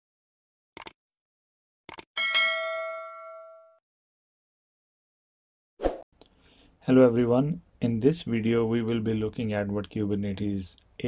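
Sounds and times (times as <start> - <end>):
notification bell ding: 2.2 - 3.8.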